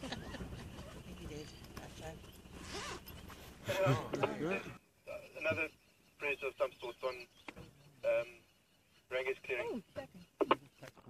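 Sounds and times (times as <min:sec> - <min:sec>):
people laughing: 0:00.0 - 0:01.1, 0:03.6 - 0:04.3
people talking: 0:00.0 - 0:02.2, 0:03.6 - 0:08.4, 0:09.1 - 0:11.0.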